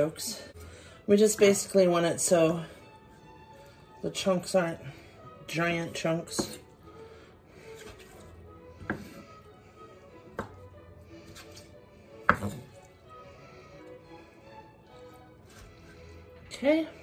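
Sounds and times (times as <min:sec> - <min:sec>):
faint background music: 0:00.0 - 0:17.0
knife chopping on wooden board: 0:06.4 - 0:06.6, 0:08.8 - 0:09.2, 0:10.3 - 0:10.6, 0:12.2 - 0:12.7.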